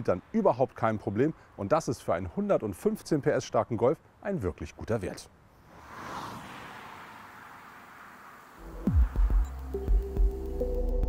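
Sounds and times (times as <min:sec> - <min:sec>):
car driving away: 0:05.6 - 0:10.5
deep bass hit: 0:08.6 - 0:10.4
electronic music: 0:08.6 - 0:11.0.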